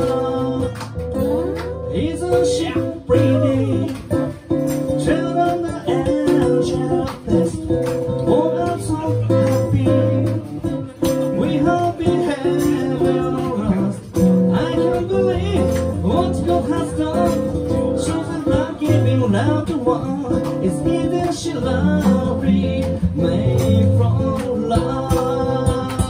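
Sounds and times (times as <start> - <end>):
acoustic guitars strummed: 0.0 - 26.0
man singing: 0.0 - 26.0.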